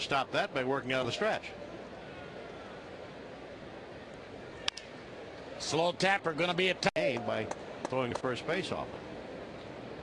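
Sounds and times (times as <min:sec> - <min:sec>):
crowd murmur: 0:01.5 - 0:05.6.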